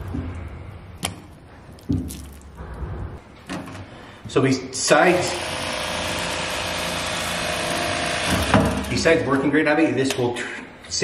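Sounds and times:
electric knife motor humming: 5.2s - 8.9s.

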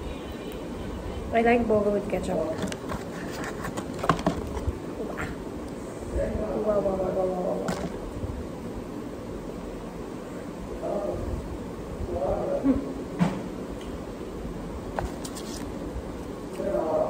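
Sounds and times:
woman talking: 1.3s - 2.7s.

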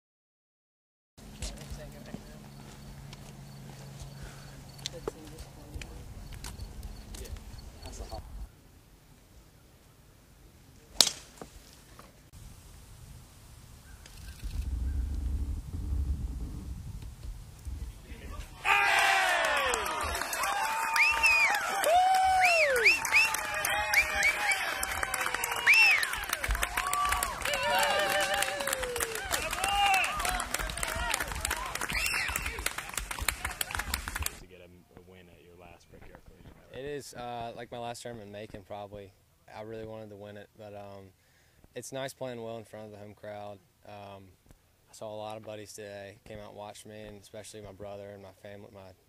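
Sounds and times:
crowd whooping and shouting: 18.4s - 33.9s
crowd clapping: 18.7s - 34.4s.

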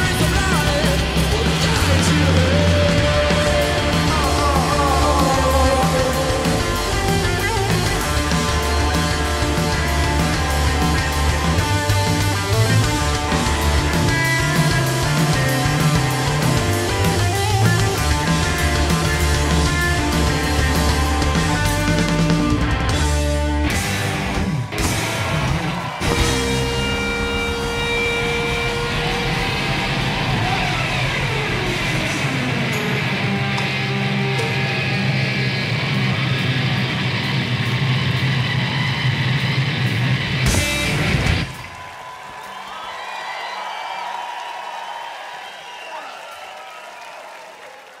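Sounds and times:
distorted electric guitar: 0.0s - 41.7s
live rock band playing: 0.0s - 41.8s.

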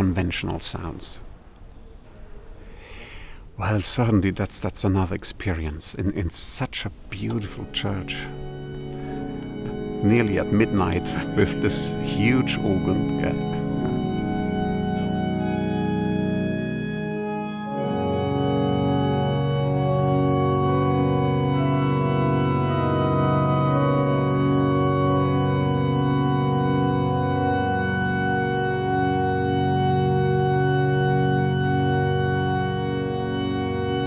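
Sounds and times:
pipe organ playing sustained chords: 0.0s - 2.8s, 3.4s - 34.0s.

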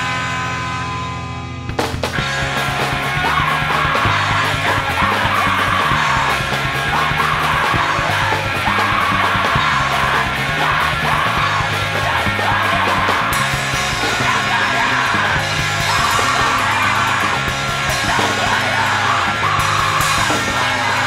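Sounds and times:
punk rock band playing: 0.0s - 21.0s
person screaming vocals: 3.2s - 13.4s, 14.0s - 21.0s.

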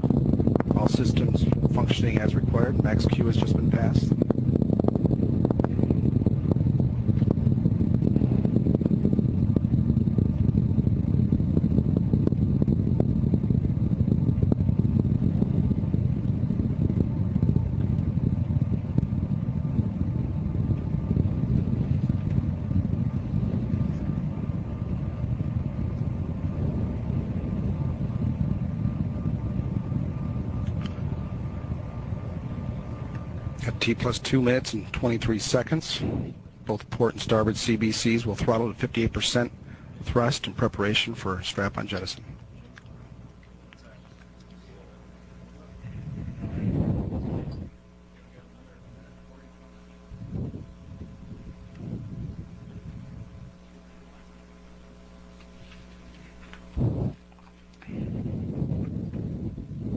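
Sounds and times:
rocket engines rumbling: 0.0s - 59.9s.

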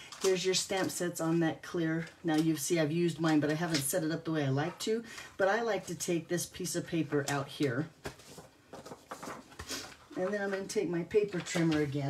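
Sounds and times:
paper rustling against plastic: 0.0s - 5.0s, 7.0s - 12.0s.

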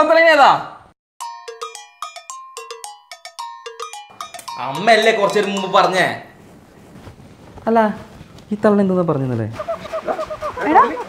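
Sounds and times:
bell-like metallic percussion: 1.2s - 6.4s.

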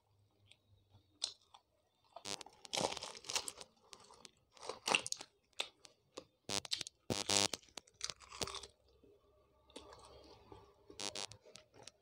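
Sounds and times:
close chewing crunches: 1.2s - 8.9s, 9.7s - 12.0s.

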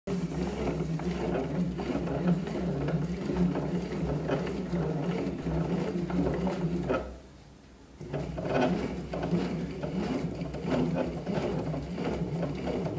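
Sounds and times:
bat-rolling machine running: 0.1s - 7.2s, 8.0s - 12.9s.

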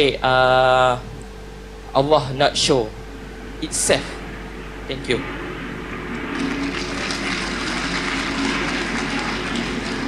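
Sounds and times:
audience applause: 6.4s - 10.0s.

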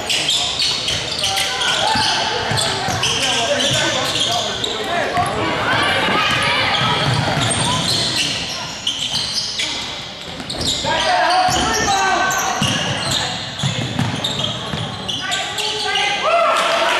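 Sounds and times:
sneakers squeaking on court: 0.0s - 16.2s
basketball bouncing: 6.3s - 8.1s, 12.6s - 14.9s.

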